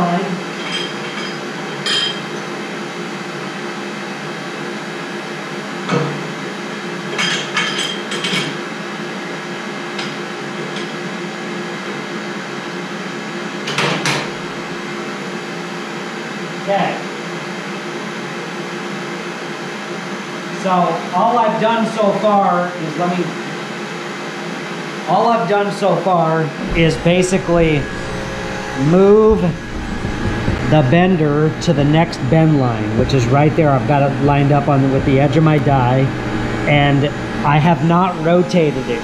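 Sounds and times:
steady mechanical hum: 0.0s - 39.0s.

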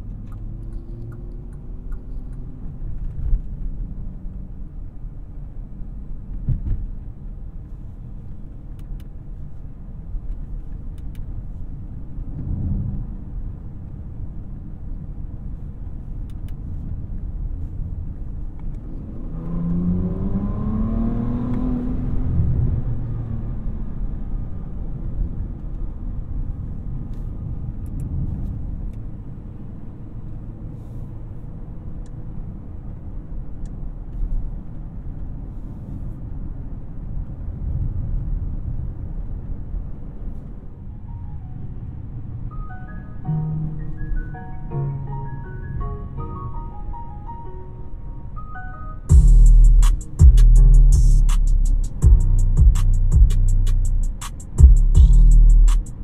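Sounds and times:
car engine and road drone: 0.0s - 56.0s.

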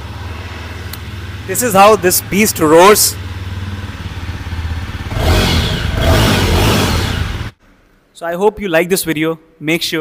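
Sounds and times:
motorcycle engine idling and revving: 0.0s - 7.6s.

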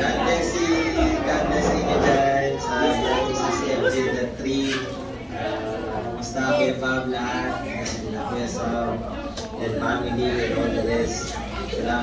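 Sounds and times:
indistinct chatter: 0.0s - 12.0s.

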